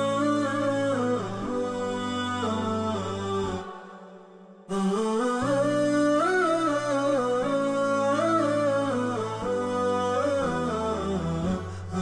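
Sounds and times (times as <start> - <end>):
hummed vocal melody: 0.0 - 12.0.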